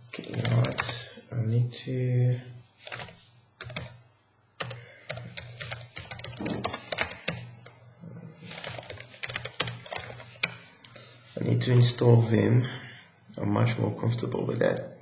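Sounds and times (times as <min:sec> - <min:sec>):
computer keyboard typing: 0:00.1 - 0:01.1, 0:02.8 - 0:04.0, 0:04.6 - 0:07.5, 0:08.4 - 0:10.6.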